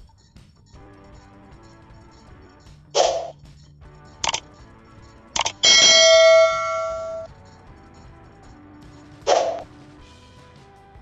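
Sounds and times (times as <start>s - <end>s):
mouse click: 4.2s - 4.4s, 5.4s - 5.6s
bright bell ding: 5.5s - 7.3s.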